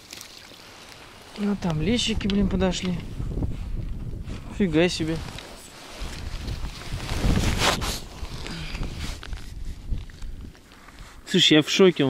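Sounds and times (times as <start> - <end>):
wind on microphone: 1.5 - 11.2
landing net rustling: 5.0 - 10.0.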